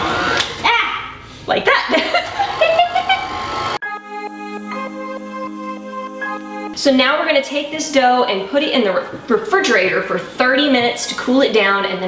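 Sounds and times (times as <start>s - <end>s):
people laughing: 1.8s - 3.3s.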